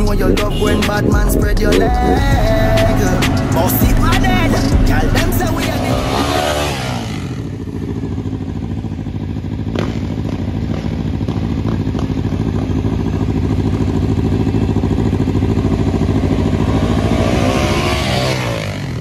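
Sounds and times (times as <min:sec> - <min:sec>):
motorcycle engines running: 0:00.0 - 0:19.0.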